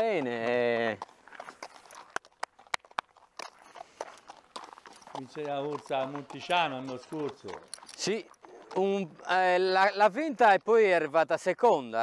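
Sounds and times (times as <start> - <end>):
footsteps: 0.0 - 10.3
horse hooves on gravel: 0.0 - 12.0.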